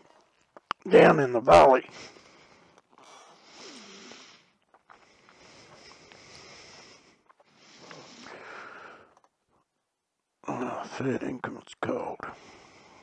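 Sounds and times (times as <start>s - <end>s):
person breathing: 1.9s - 9.2s, 12.3s - 13.0s.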